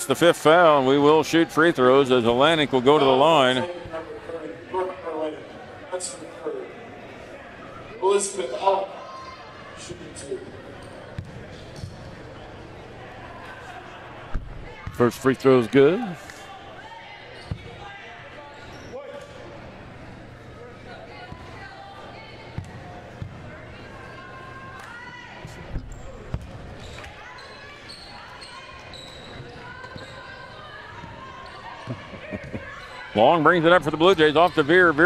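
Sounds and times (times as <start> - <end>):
murmur of crowd chatter: 0.0 - 35.0.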